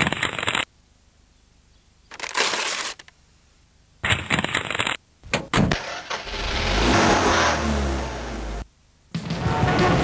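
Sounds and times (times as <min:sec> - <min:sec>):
paper crinkling: 0:02.1 - 0:03.2.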